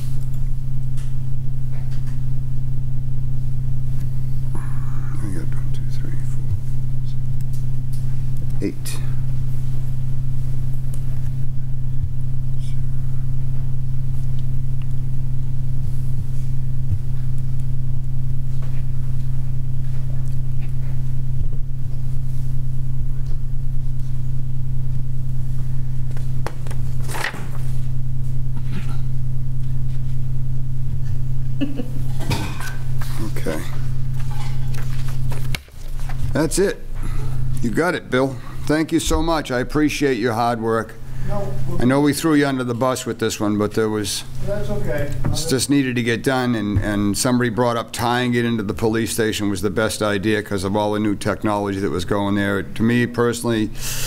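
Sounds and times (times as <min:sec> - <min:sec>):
low electrical hum: 0:00.0 - 0:54.0.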